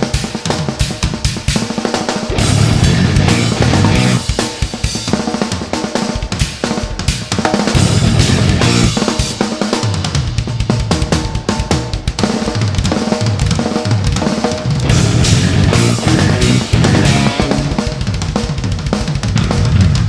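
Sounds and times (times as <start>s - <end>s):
drums and cymbals: 0.0s - 20.0s
metal band playing: 0.0s - 20.0s
electric bass: 2.3s - 4.3s, 7.8s - 9.0s, 14.8s - 18.0s.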